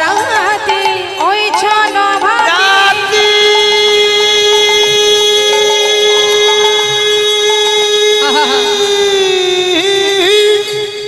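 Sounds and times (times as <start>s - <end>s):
held reedy instrumental note: 2.7s - 11.0s.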